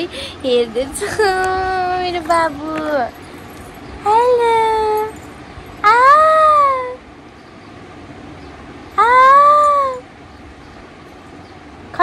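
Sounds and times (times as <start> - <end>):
woman's high-pitched wordless calls: 0.0 - 3.1, 4.0 - 5.2, 5.8 - 7.1, 9.0 - 10.1.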